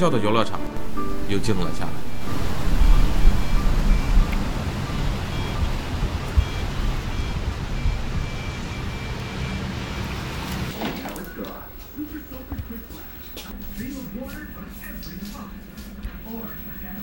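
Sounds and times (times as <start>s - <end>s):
wind buffeting microphone: 1.9s - 9.9s.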